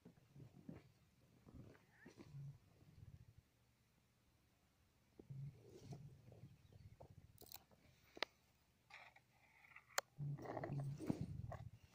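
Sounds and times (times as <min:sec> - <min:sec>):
animal chewing and crunching: 0:09.0 - 0:11.9.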